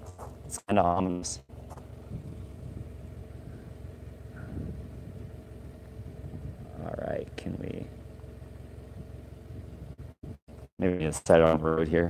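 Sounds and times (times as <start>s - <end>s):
low mechanical hum: 0.0s - 12.0s
man's voice: 10.8s - 12.0s.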